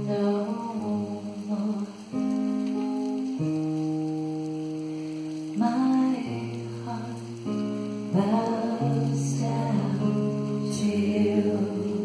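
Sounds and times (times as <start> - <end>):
acoustic guitar: 0.0 - 12.0.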